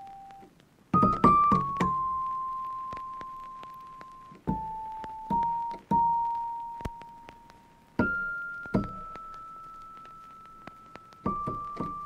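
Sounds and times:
slow piano melody: 0:00.0 - 0:12.0.

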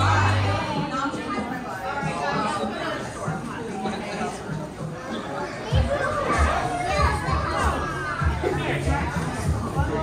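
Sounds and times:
shoppers chattering: 0:00.0 - 0:10.0
child's voice: 0:05.6 - 0:08.4.

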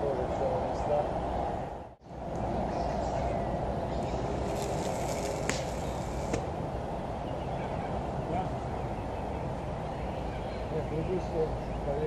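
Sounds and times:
open air background noise: 0:00.0 - 0:12.0.

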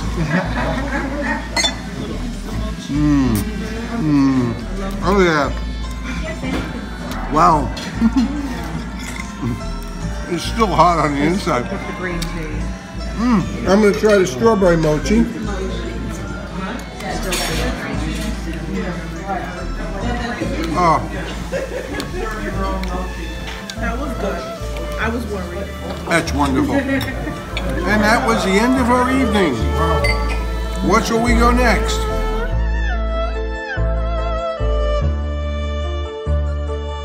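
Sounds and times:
fork clinking on ceramic plate: 0:01.6 - 0:01.9
people talking: 0:13.2 - 0:32.3.

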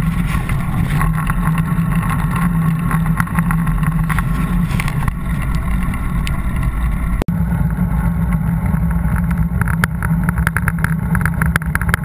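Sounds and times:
road rumble and wind noise: 0:00.0 - 0:12.0.

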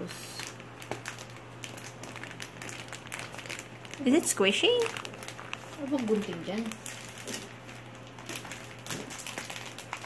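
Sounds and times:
plastic packaging crinkling: 0:00.2 - 0:10.0.

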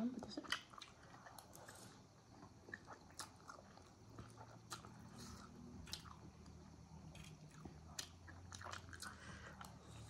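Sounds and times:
people chewing food: 0:00.0 - 0:10.0.

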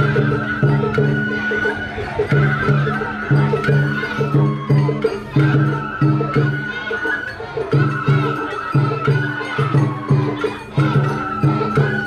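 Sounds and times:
high flute melody: 0:00.0 - 0:12.0
rhythmic percussion accompaniment: 0:00.0 - 0:12.0.

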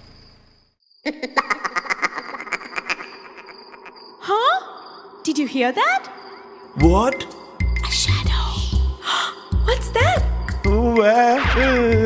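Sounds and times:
music: 0:06.7 - 0:12.0.

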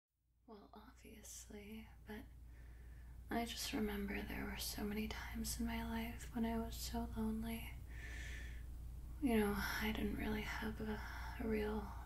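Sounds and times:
woman whispering: 0:00.5 - 0:02.3, 0:03.3 - 0:07.8, 0:09.2 - 0:12.0
steady low hum: 0:00.5 - 0:12.0.

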